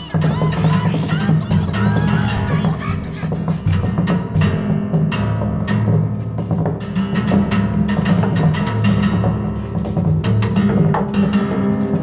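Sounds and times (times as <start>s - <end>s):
high chattering voices: 0.0s - 4.1s
sharp percussive hits: 0.0s - 12.0s.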